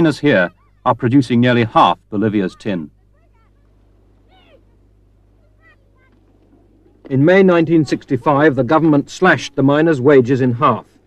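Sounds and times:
distant voices calling out: 0.0 - 11.0
low steady hum: 0.0 - 11.0.

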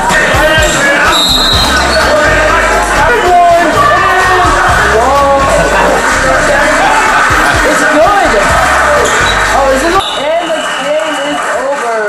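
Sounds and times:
music with voices: 0.0 - 10.3.

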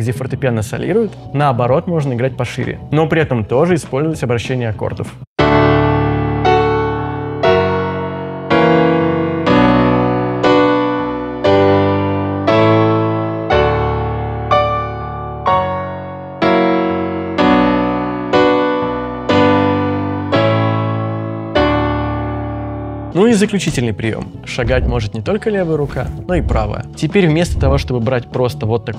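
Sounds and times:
piano chords ringing: 5.4 - 28.2.

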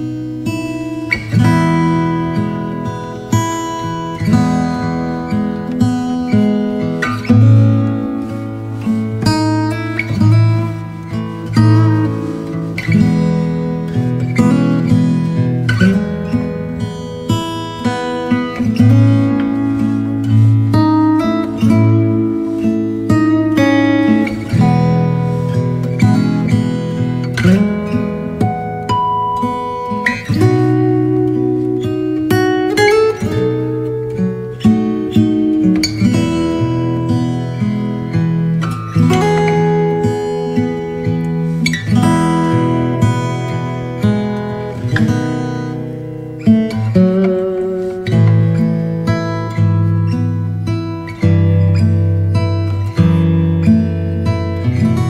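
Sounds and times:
acoustic guitar music: 0.0 - 55.0.

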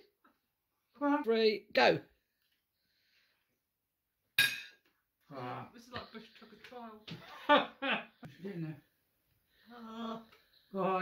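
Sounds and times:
cutlery clinking on china plate: 4.4 - 4.8.

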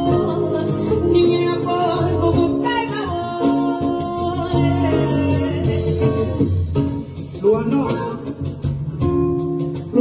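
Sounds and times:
vocal duet singing: 0.0 - 6.6
plucked string backing: 0.0 - 10.0.

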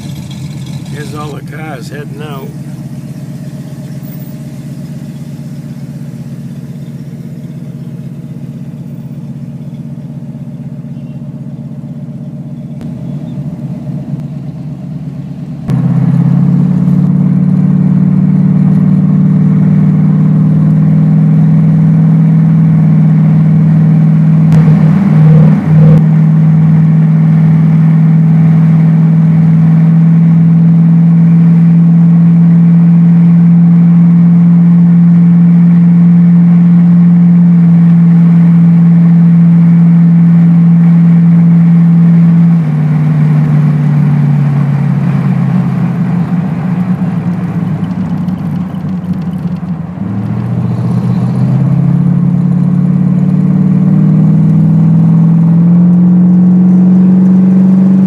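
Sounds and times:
car engine droning in cabin: 0.0 - 58.0.

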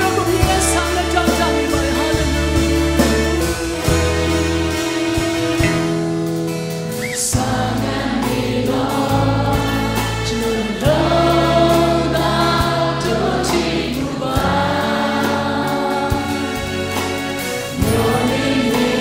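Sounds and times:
man singing lead: 0.0 - 4.2
strummed acoustic guitar: 0.0 - 19.0
sustained bass line: 0.0 - 19.0
backing singers: 7.0 - 19.0.

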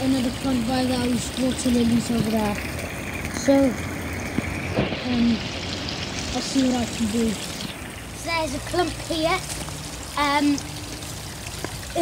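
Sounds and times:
fountain water trickling: 0.0 - 12.0.

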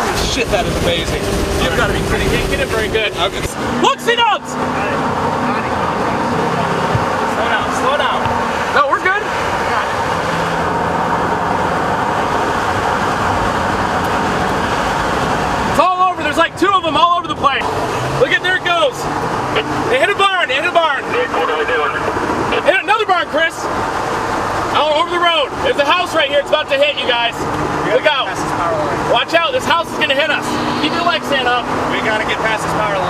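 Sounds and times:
wind and road noise in vehicle: 0.0 - 33.0.

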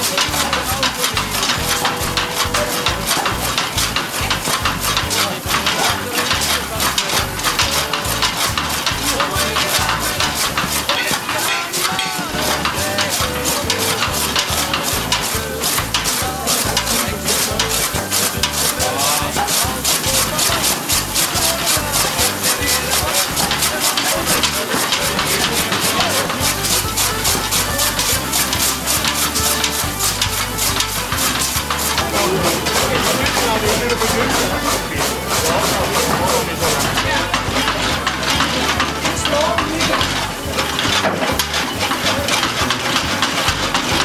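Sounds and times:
chaff cutter blades clattering: 0.0 - 44.0.

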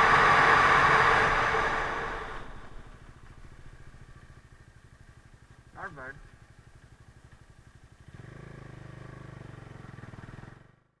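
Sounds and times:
motorcycle pulling away: 0.0 - 5.7, 6.3 - 11.0
motorcycle engine idling: 1.2 - 10.9.

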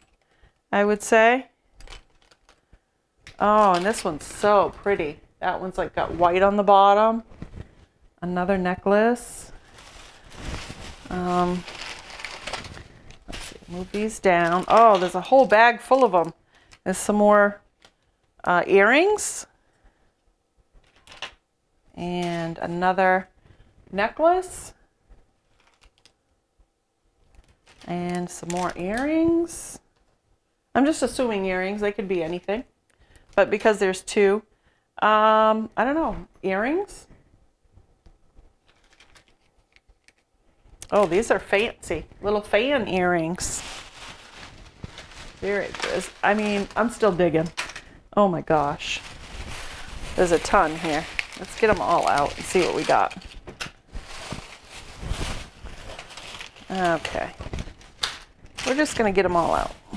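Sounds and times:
packaging rustling: 1.8 - 5.1, 9.4 - 17.0, 25.4 - 26.2, 27.2 - 29.3, 38.6 - 59.9.

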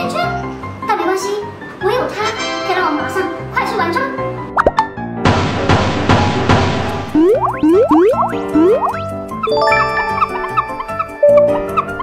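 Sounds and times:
background music: 0.0 - 12.0
cartoon plop sound effects: 4.6 - 4.9, 7.2 - 9.0.

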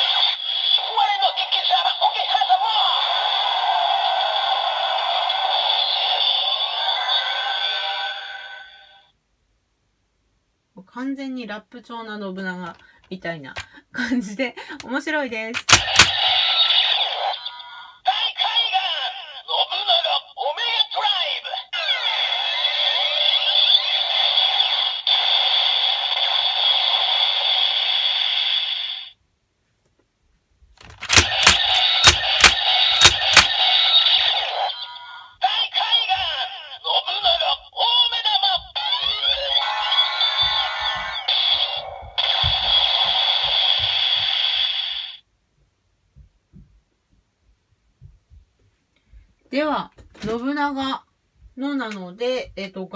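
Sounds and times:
toy belt electronic voice calls: 0.0 - 8.0, 15.6 - 29.1, 30.9 - 45.2
plastic lever clicks: 30.8 - 33.5.

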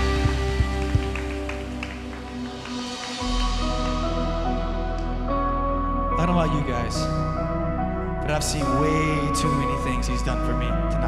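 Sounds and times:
worship band music: 0.0 - 11.0.

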